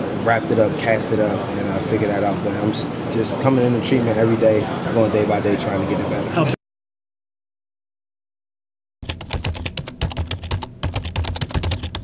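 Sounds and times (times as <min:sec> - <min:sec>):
rapid keyboard typing: 0:09.0 - 0:12.0.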